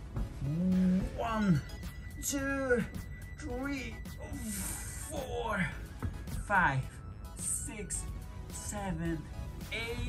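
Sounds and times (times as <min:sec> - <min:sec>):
man's wordless vocal sounds: 0:00.4 - 0:01.8.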